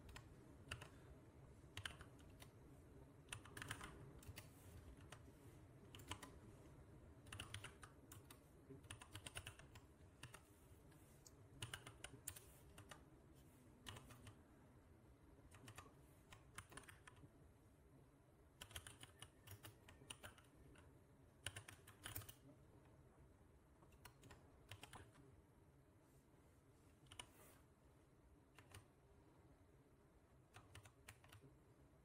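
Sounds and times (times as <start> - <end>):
faint computer keyboard typing: 0.0 - 13.2, 13.8 - 14.6, 15.4 - 17.4, 18.5 - 23.0, 23.7 - 25.3, 26.9 - 27.6, 28.4 - 29.1, 30.3 - 31.7.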